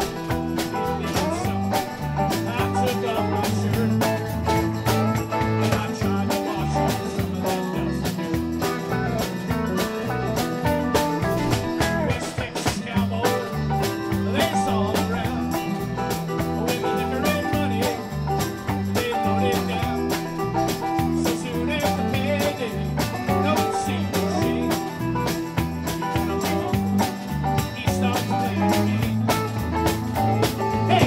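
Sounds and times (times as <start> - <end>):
live country-rock band: 0.0 - 31.0.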